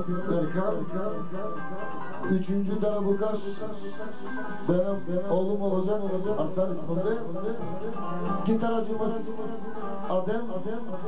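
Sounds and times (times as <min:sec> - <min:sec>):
plucked string instrument: 0:00.0 - 0:11.0.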